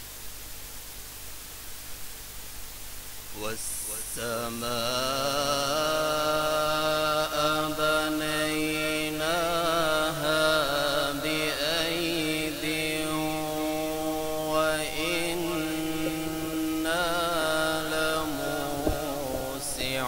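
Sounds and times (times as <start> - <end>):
man chanting through microphone: 3.3 - 20.0.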